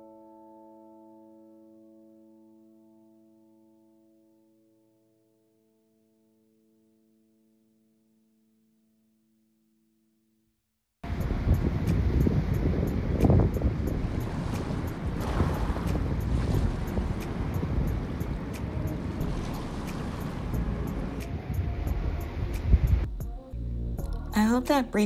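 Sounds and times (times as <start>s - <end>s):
wind rumbling on microphone: 11.0s - 24.3s
small waves washing onto sand: 11.1s - 22.9s.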